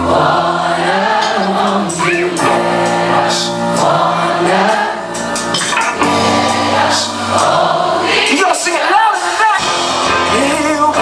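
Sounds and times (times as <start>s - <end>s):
live band playing: 0.0s - 11.0s.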